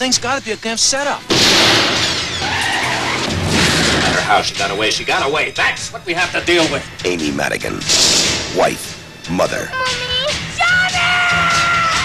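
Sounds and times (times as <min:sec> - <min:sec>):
tyres squealing: 0:00.0 - 0:07.8.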